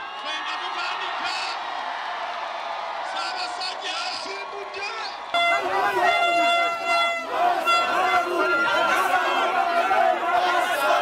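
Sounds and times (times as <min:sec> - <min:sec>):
large crowd cheering and whooping: 0:00.0 - 0:11.0.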